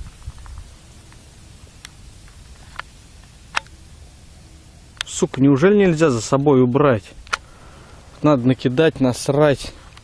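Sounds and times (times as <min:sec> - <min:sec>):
dry reeds crackling: 0:00.0 - 0:06.4.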